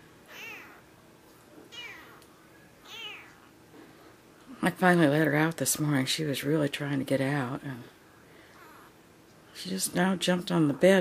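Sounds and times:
cat meowing: 0.3s - 0.8s, 1.7s - 2.2s, 2.8s - 3.4s.

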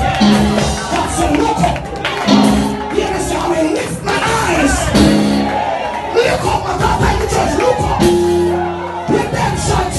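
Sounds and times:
crowd shouting and praising: 0.0s - 9.9s
lively church music: 0.0s - 9.9s.

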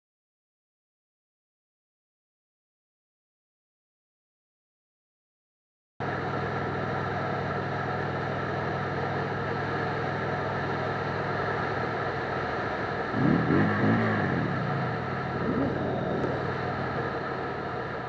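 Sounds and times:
motorcycle engine revving: 6.6s - 18.0s.

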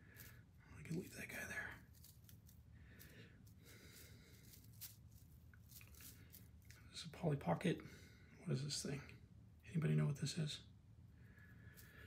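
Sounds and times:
faint rustling of moss: 0.0s - 7.5s.

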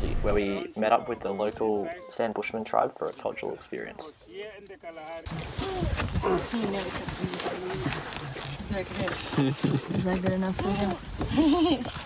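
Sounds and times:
people talking: 0.0s - 11.9s.

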